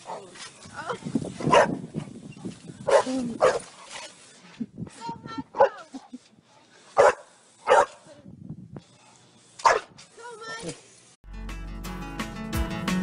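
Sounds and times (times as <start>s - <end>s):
dog barking: 1.4s - 1.8s, 2.9s - 3.6s, 7.0s - 8.0s, 9.6s - 9.9s.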